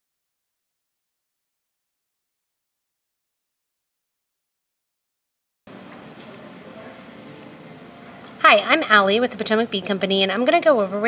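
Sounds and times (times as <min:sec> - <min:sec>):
faint steady hum: 0:05.7 - 0:11.0.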